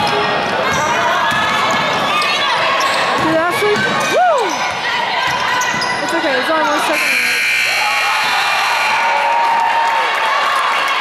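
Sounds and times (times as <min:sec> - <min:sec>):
crowd voices and cheering: 0:00.0 - 0:11.0
scoreboard buzzer: 0:06.9 - 0:09.3.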